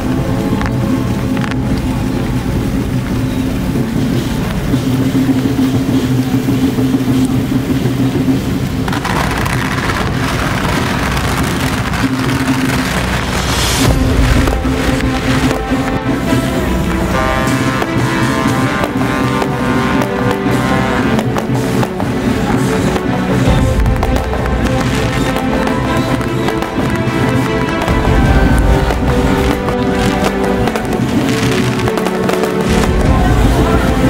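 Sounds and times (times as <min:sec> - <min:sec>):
water spray hiss: 0:00.0 - 0:34.0.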